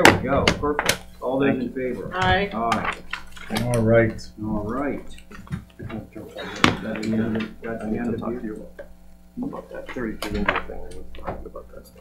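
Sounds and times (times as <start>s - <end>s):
quiet talking: 3.5s - 8.8s.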